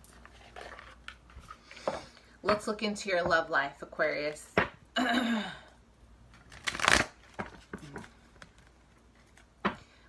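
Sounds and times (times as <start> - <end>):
cards being shuffled: 6.3 - 9.6.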